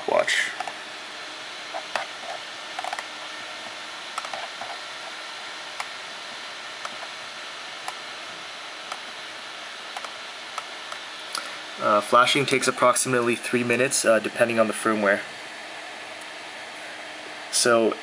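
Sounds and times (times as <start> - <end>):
room noise hiss: 0.0 - 18.0.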